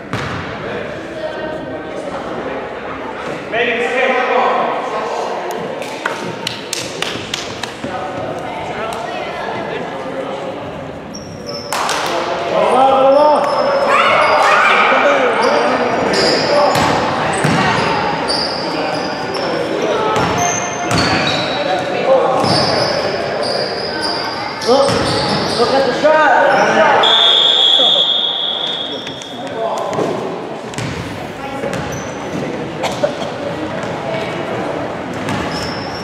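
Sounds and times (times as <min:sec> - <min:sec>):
sneakers squeaking: 0:00.0 - 0:00.5, 0:11.0 - 0:12.0, 0:13.1 - 0:32.7, 0:35.0 - 0:36.0
whistle blowing: 0:27.0 - 0:29.4.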